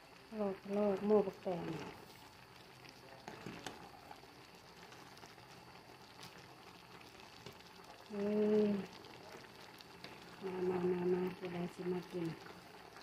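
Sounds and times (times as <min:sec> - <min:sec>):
pot simmering: 0:00.0 - 0:13.0.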